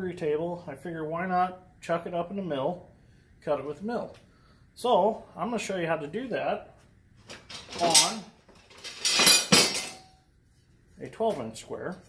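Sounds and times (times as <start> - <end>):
metal squares clattering: 7.4 - 10.0.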